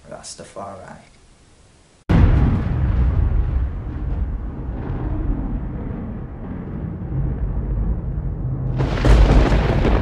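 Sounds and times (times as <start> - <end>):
deep low rumble: 2.1 - 10.0.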